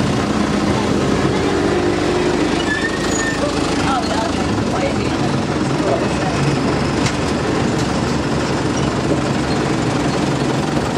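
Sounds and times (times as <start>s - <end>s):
road noise: 0.0s - 10.9s
vehicle engine rumble: 0.0s - 10.9s.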